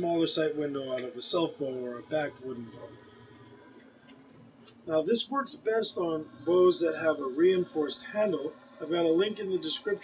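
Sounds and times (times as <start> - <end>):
man talking: 0.0 - 3.0, 4.9 - 10.0
background hum with hiss: 0.0 - 10.0.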